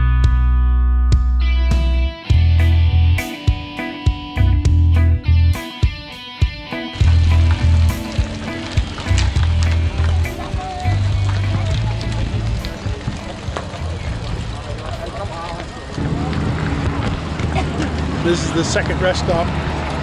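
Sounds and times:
bicycle tyre and road noise: 6.9 - 20.0
wind buffeting microphone: 7.0 - 20.0
murmur of voices: 7.3 - 19.2.

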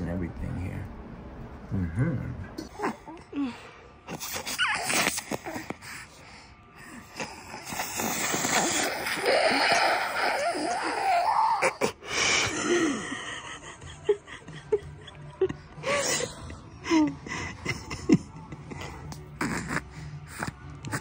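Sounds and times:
nasal aspirator suction hiss: 7.2 - 11.4.

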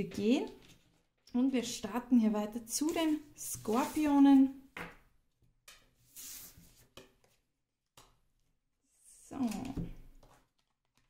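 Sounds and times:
cards sliding on wooden table: 2.9 - 4.2, 5.8 - 7.1.

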